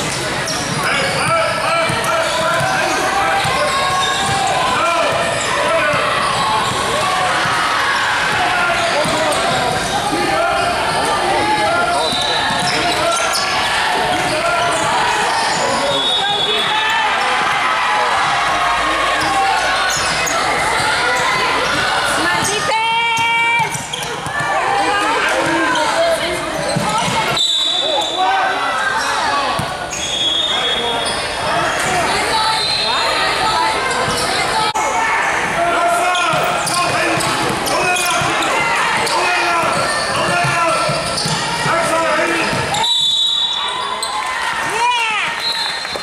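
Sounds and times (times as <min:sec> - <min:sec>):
sneakers squeaking on hardwood: 0:00.0 - 0:07.6, 0:08.3 - 0:10.0, 0:10.6 - 0:17.6, 0:19.2 - 0:24.6, 0:25.4 - 0:28.2, 0:33.8 - 0:34.6, 0:36.2 - 0:44.3
players calling out: 0:00.0 - 0:46.0
basketball dribbling: 0:08.3 - 0:09.9, 0:36.3 - 0:42.8.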